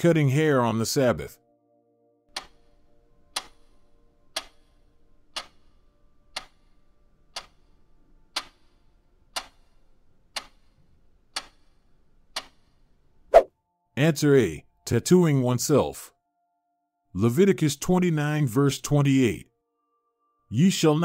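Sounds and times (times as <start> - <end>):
clock ticking: 2.3 - 13.0.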